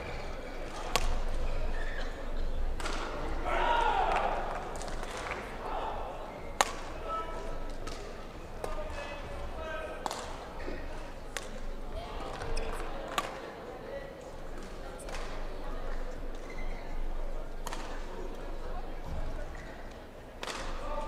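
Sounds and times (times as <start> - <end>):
murmur of voices: 0.0 - 21.0.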